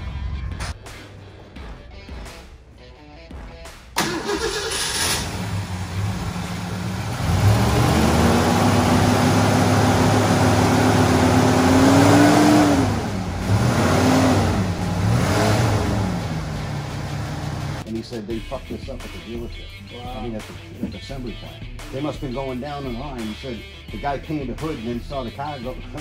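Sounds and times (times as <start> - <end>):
car engine idling and revving: 3.3 - 17.9.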